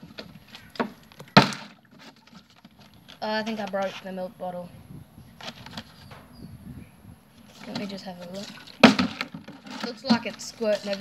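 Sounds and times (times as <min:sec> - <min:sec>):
plastic jug clicks and crinkles: 0:00.0 - 0:04.1, 0:07.4 - 0:11.0.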